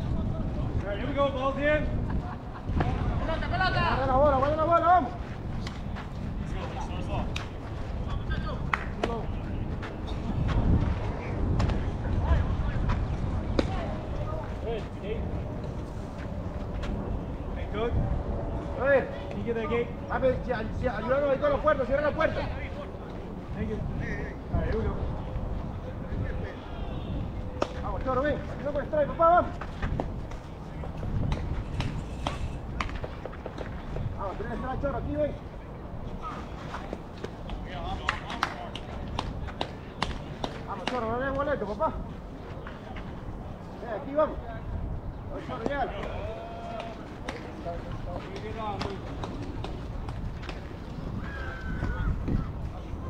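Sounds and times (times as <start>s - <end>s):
distant voices: 0.0s - 53.0s
wind rumble on microphone: 0.0s - 53.0s
distant players calling: 45.1s - 53.0s.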